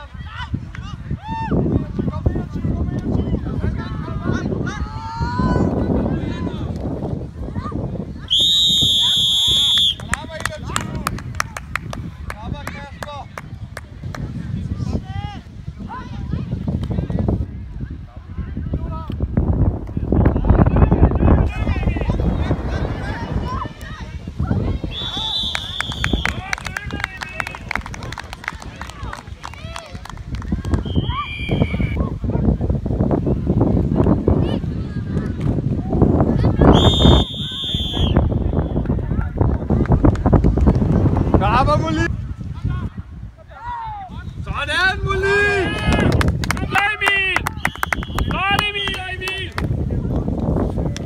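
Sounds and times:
referee's whistle blast: 0:08.3 - 0:10.2, 0:24.9 - 0:26.4, 0:30.8 - 0:32.0, 0:36.7 - 0:38.3
voices shouting: 0:21.0 - 0:27.6.

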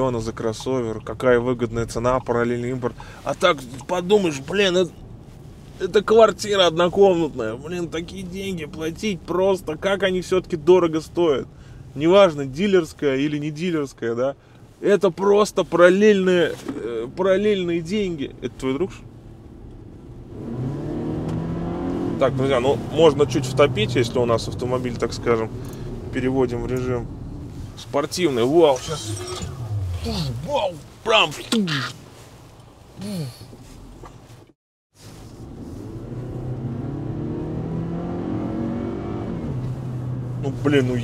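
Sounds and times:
car interior road noise: 0:00.0 - 0:41.0
car engine accelerating: 0:16.7 - 0:30.7, 0:35.2 - 0:41.0.

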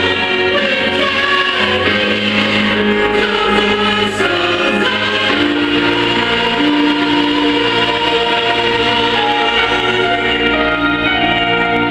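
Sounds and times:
recorded gospel choir song: 0:00.0 - 0:11.9.

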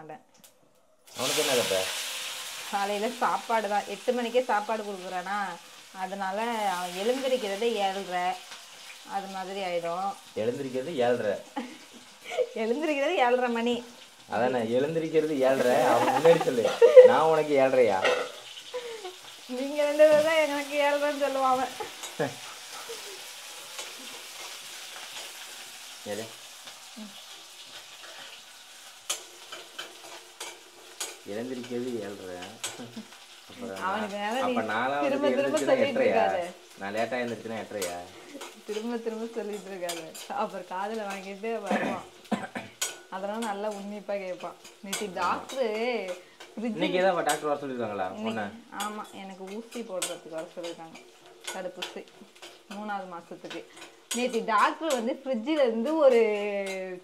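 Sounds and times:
onions sizzling in pan: 0:00.4 - 0:57.0
spoon stirring and scraping pan: 0:15.3 - 0:57.0.

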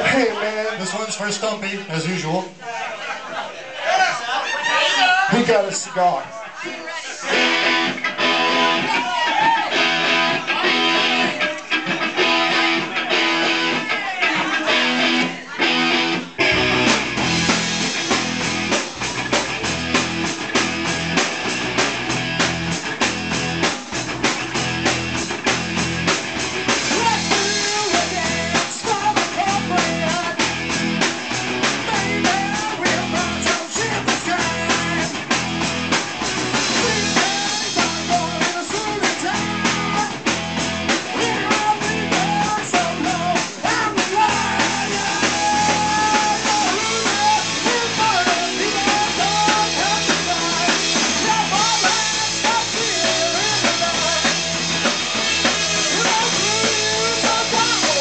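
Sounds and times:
bass and drums: 0:00.0 - 0:02.6, 0:05.2 - 0:58.0
electric guitar: 0:06.6 - 0:58.0.

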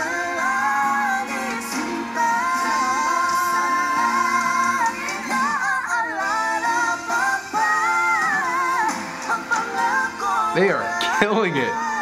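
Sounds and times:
band accompaniment: 0:00.0 - 0:12.0
pop ballad duet vocals: 0:00.0 - 0:12.0.

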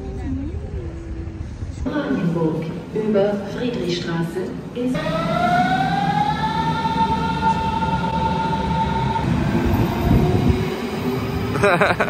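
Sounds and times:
train wheels rumbling: 0:00.0 - 0:12.0.

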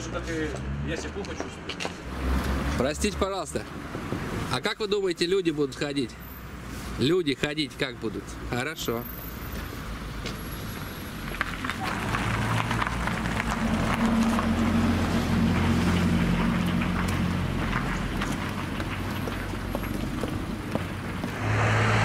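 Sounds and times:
street noise: 0:00.0 - 0:22.0.

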